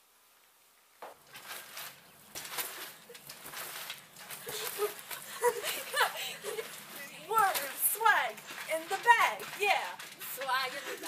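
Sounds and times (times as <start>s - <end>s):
trampoline thumps and spring rattles: 1.0s - 11.0s.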